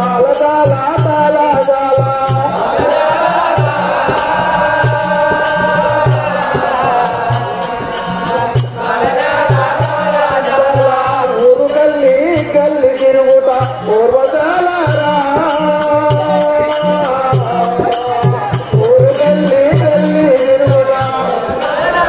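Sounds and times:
chanted song: 0.0s - 22.0s
jingling percussion: 0.0s - 22.0s
steady drum beat: 0.0s - 22.0s.

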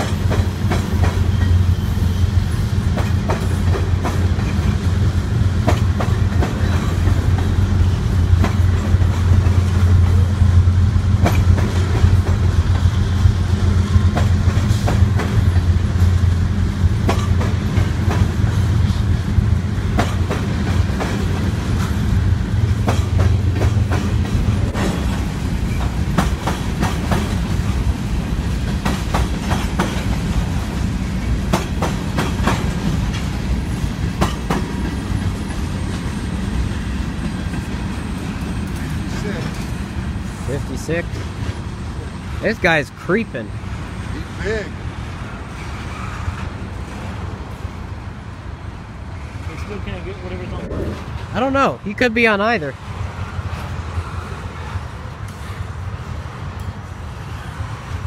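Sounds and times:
wheels clacking over rail joints: 0.0s - 42.4s
freight train rumbling: 0.0s - 58.0s.

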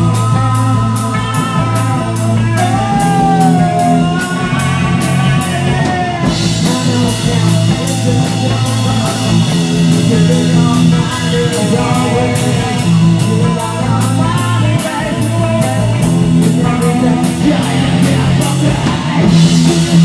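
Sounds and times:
bass guitar: 0.0s - 20.0s
drum kit beat: 0.0s - 20.0s
electric guitar: 0.0s - 20.0s.

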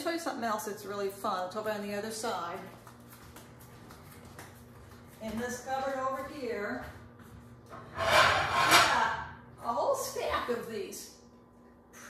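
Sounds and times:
faint footsteps on kitchen floor: 1.2s - 7.8s.

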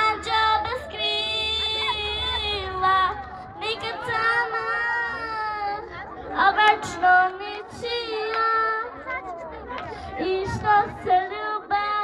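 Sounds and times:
girl singing: 0.0s - 9.4s, 10.1s - 12.0s.

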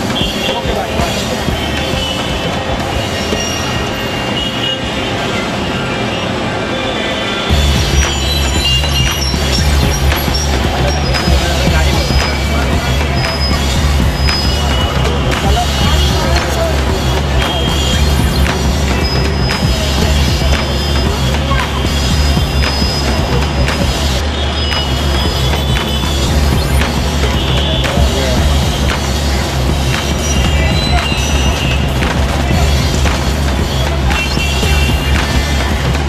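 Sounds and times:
low traffic rumble: 0.0s - 36.0s
music playing: 0.0s - 36.0s.

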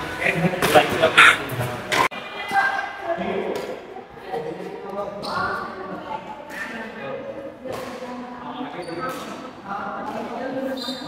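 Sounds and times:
players talking: 0.0s - 11.0s
rackets hitting shuttlecock: 7.7s - 8.1s.

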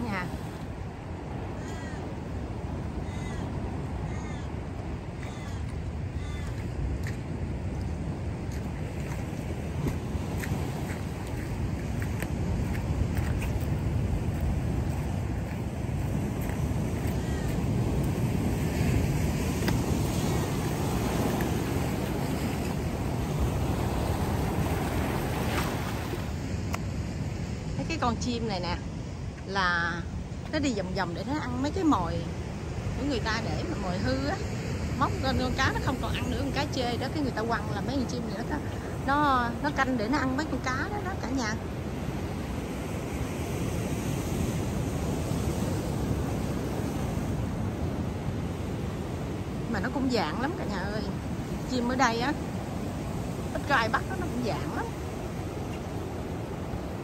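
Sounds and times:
surf against rocky shore: 0.0s - 57.0s
wind on microphone: 0.0s - 57.0s.

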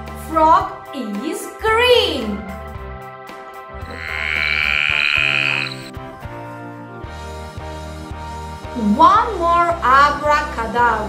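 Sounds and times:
light background music: 0.0s - 11.0s
frog call: 3.8s - 5.9s.

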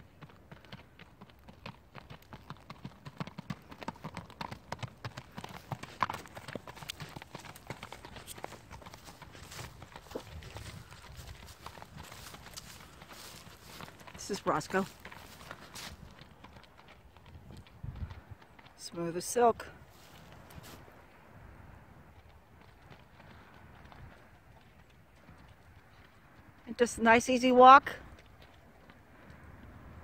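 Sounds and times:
horse hoofbeats on gravel: 0.0s - 21.0s.

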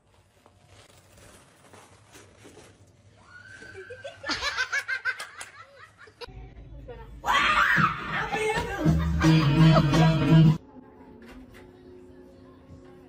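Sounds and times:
person laughing: 8.3s - 10.2s.

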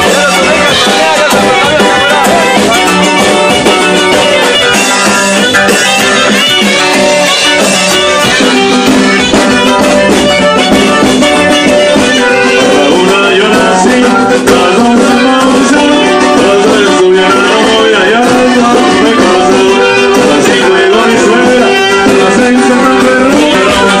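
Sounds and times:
accordion: 0.0s - 24.0s
live band playing: 0.0s - 24.0s
saxophone: 0.0s - 24.0s.

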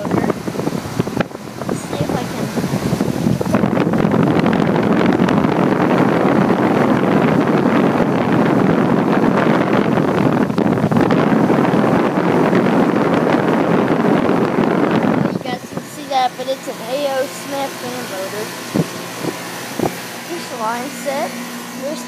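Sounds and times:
air conditioner fan rushing: 0.0s - 22.0s
wind buffeting microphone: 0.0s - 22.0s.

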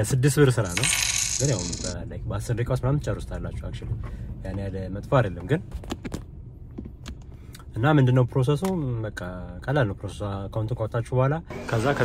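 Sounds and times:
man talking: 0.0s - 5.7s
coin jingle: 0.5s - 2.0s.

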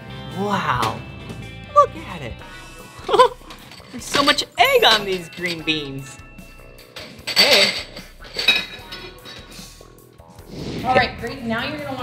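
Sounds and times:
glass bowl clinking: 3.1s - 6.2s, 6.9s - 9.4s.

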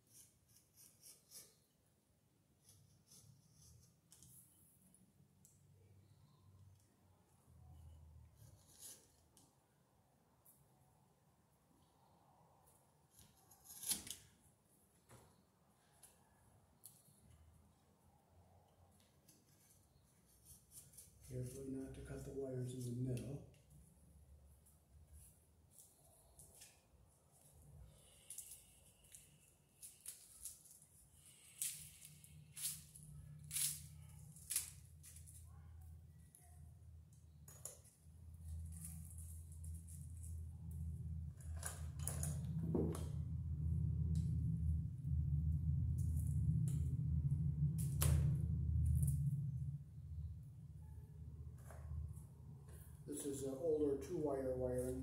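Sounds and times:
low rumble: 39.4s - 52.9s.

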